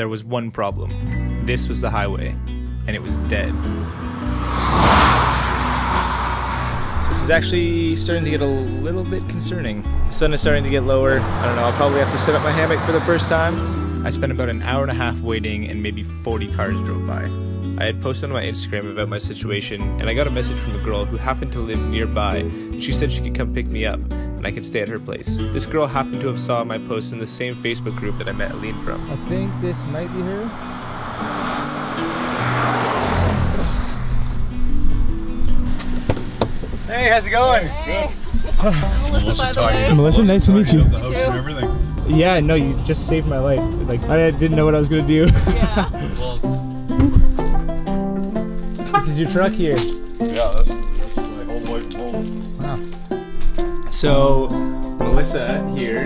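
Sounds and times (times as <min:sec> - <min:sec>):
background music: 0:00.0 - 0:56.0
vehicle passing whoosh: 0:02.4 - 0:14.5, 0:27.3 - 0:37.3, 0:38.2 - 0:48.9.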